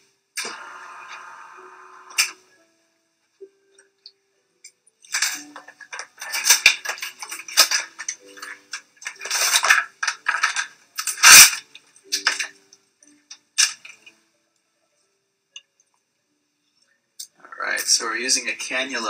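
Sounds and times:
rustling of wrappers: 5.0 - 12.6.

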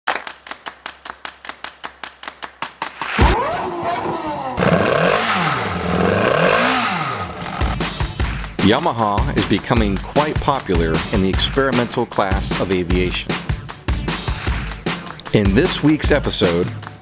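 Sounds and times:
sports car engine revving: 3.2 - 7.8.

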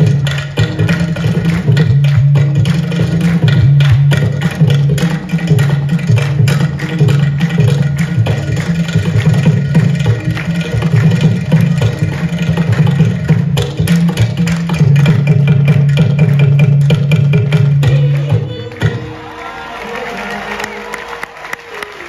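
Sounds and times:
fast drum and clay pot percussion: 0.0 - 19.4.

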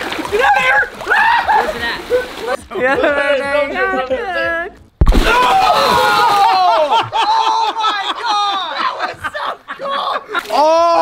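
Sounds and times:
men whooping and laughing: 1.0 - 2.6, 5.3 - 11.0.

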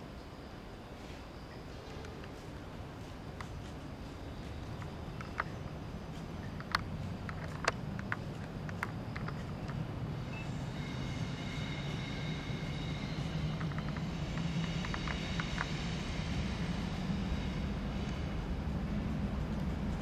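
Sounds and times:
faint high whine: 0.0 - 20.0
train rumble: 0.0 - 20.0.

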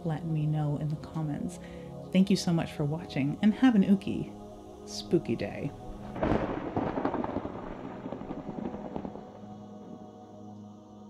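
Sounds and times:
ambient music drone: 0.0 - 11.0
rolling thunder: 5.7 - 10.2.

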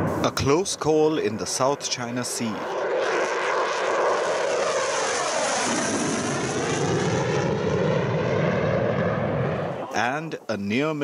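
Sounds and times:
jet engine noise in cockpit: 0.0 - 9.8.

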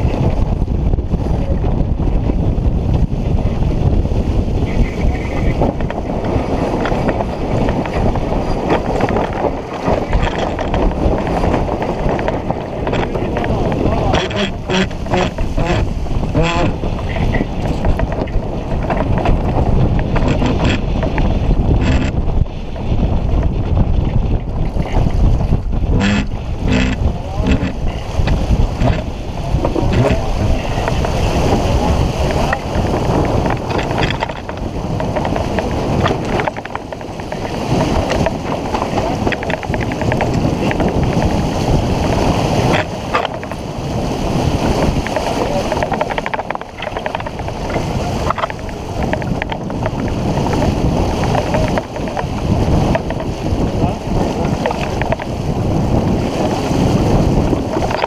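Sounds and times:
water rushing along hull: 0.0 - 58.0
wind buffeting microphone: 0.0 - 58.0.

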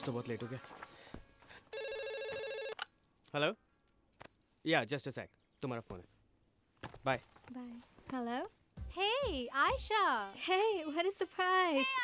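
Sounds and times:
telephone ringing: 1.7 - 3.0.

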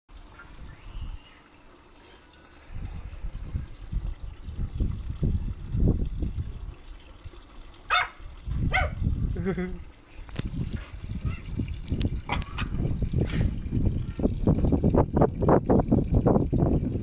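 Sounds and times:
small dog yapping: 7.9 - 9.0.

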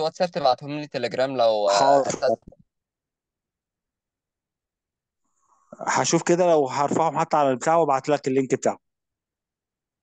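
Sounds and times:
man talking: 0.0 - 2.5, 5.8 - 8.8.

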